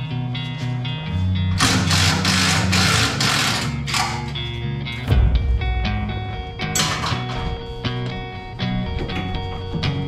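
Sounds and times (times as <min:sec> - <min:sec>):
background music: 0:00.0 - 0:10.0
impact driver hammering on bolt: 0:01.6 - 0:04.3.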